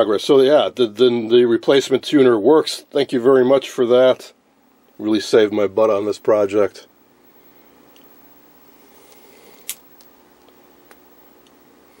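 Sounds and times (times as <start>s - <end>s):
television hum: 0.0s - 12.0s.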